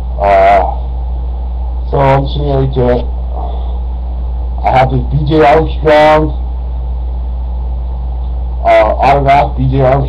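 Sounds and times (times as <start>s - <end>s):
steady low hum: 0.0s - 10.0s
man's voice: 0.2s - 0.8s, 1.9s - 3.6s, 4.6s - 6.4s, 8.6s - 10.0s.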